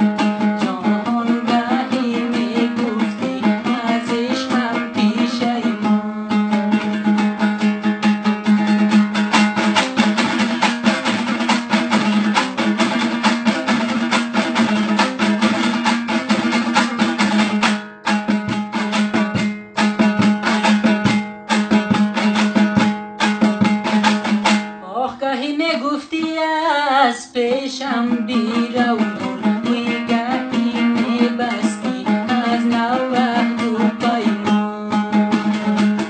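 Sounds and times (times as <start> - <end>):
lute strummed fast: 0.0 - 25.2, 25.8 - 36.0.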